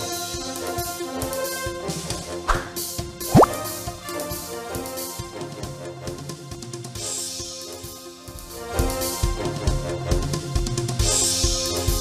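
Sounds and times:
music: 0.0 - 12.0
rising pop-like blip: 3.3 - 3.6.

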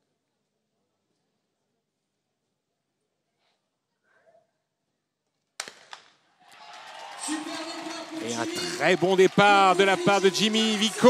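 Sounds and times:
crowd noise: 6.5 - 11.0.

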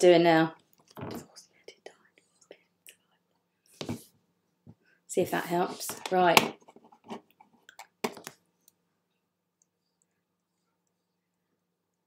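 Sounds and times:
woman whispering: 1.3 - 2.2.

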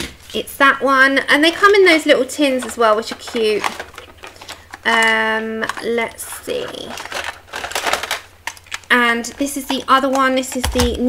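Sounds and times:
metal tin clicks and scrapes: 9.4 - 11.0.

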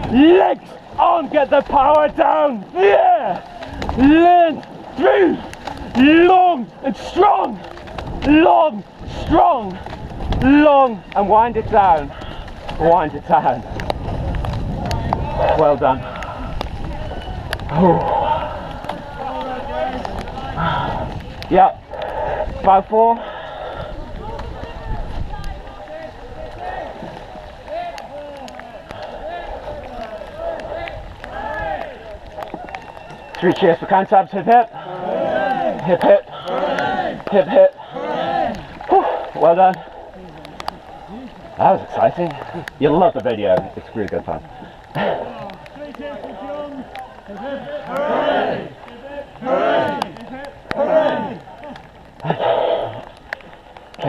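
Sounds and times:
people shouting: 0.0 - 12.0, 14.9 - 43.5, 44.5 - 53.6
wind rumble on microphone: 7.7 - 33.3.

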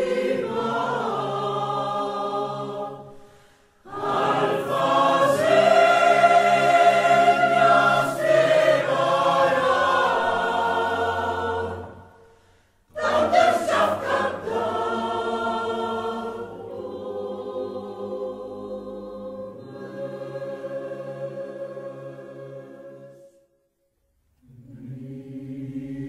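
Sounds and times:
mixed choir singing: 0.0 - 3.2, 3.8 - 23.5, 24.4 - 26.0.

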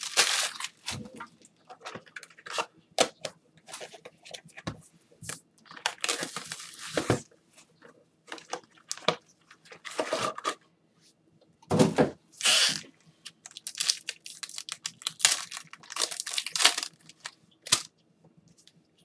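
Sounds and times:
wrapper crinkling: 0.0 - 1.2, 5.7 - 7.2, 13.4 - 17.9.

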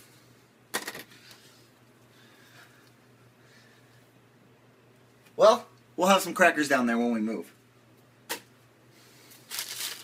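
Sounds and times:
crackers clicking and crackling: 9.3 - 10.0.

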